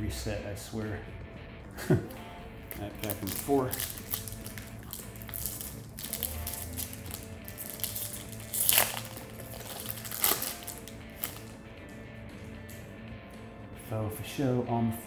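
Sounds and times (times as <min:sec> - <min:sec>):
quiet background music: 0:00.0 - 0:15.0
foil wrapper crinkling: 0:02.6 - 0:11.5.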